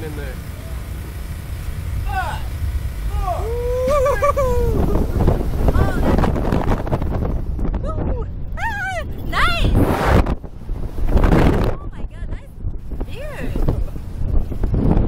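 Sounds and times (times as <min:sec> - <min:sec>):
wind rushing over microphone: 0:00.2 - 0:15.0
people whooping and laughing: 0:03.1 - 0:05.2.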